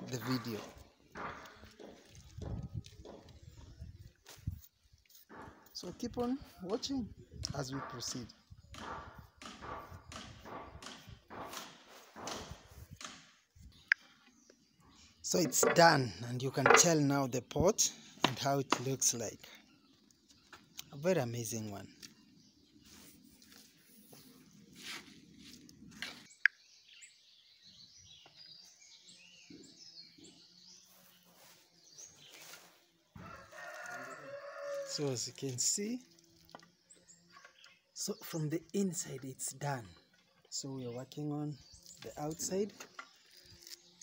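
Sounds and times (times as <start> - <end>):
rooster crowing faintly: 33.2 - 35.0.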